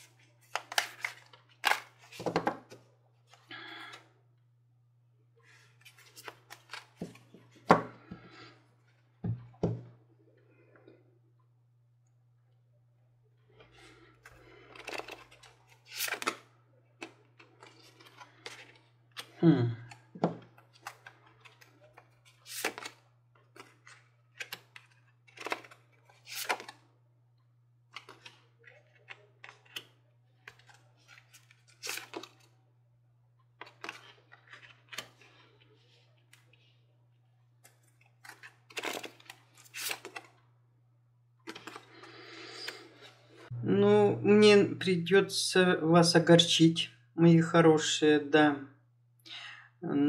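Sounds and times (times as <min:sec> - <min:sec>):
cards being shuffled: 0:00.0 - 0:03.4, 0:05.5 - 0:07.8, 0:14.3 - 0:19.4, 0:20.5 - 0:26.8, 0:27.9 - 0:32.5, 0:33.6 - 0:36.6, 0:37.6 - 0:40.4, 0:41.4 - 0:43.2.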